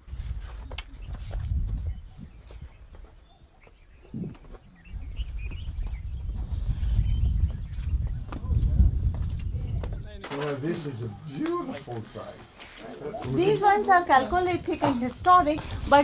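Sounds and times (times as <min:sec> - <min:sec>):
wind rumbling on microphone: 0:00.0 - 0:10.3, 0:14.1 - 0:16.0.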